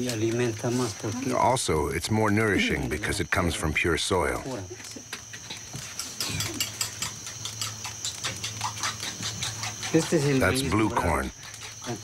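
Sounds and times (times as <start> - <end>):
dry corn ears rubbing and rattling: 0.0 - 1.6, 4.8 - 12.0.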